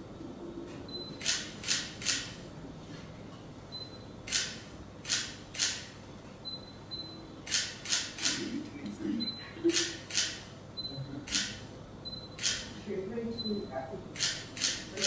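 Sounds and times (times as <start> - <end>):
camera shutter bursts: 1.2 - 2.3, 4.3 - 5.9, 7.5 - 8.4, 12.4 - 12.7, 14.2 - 14.9
high focus beep: 10.8 - 11.0.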